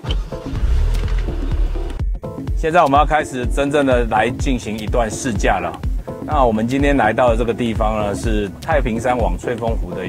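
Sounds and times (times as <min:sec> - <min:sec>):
car engine starting and running: 0:00.0 - 0:02.0
electronic music: 0:00.0 - 0:03.0.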